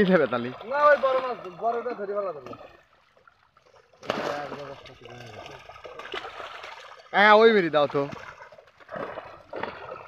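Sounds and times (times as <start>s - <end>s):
fish splashing: 0.0s - 10.0s
water splashing and sloshing: 0.0s - 10.0s.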